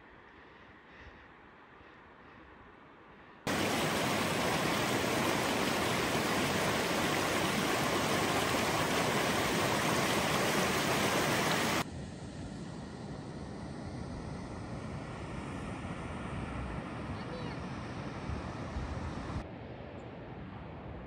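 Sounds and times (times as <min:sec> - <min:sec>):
creek rushing over rocks: 0:03.5 - 0:11.8.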